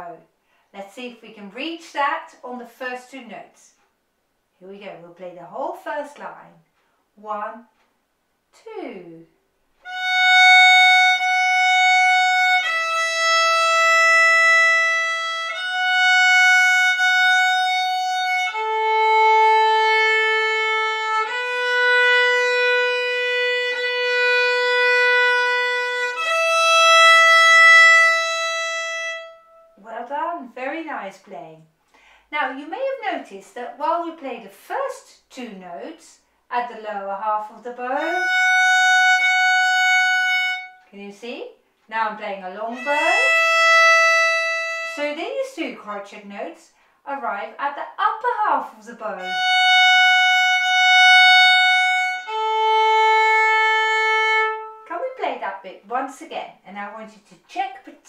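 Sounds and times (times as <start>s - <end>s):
solo violin slow melody: 9.8s - 29.8s, 38.0s - 40.9s, 42.8s - 45.0s, 49.2s - 54.9s.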